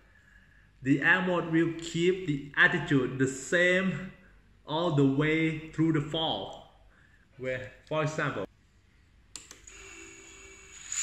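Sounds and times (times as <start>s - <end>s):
drone motors high-pitched whine: 9.6s - 11.0s.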